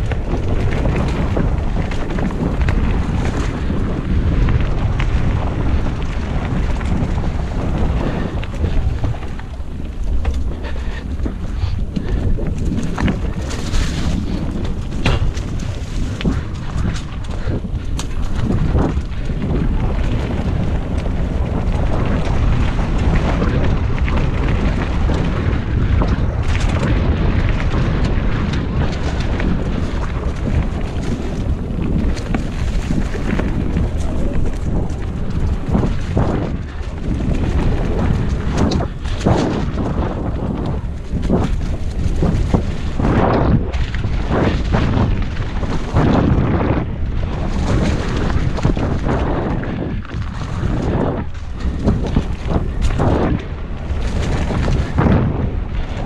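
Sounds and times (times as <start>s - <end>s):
bike knocks and rattles: 0.0s - 56.0s
bike tyres rolling on dirt trail: 0.0s - 56.0s
wind buffeting microphone: 0.0s - 56.0s.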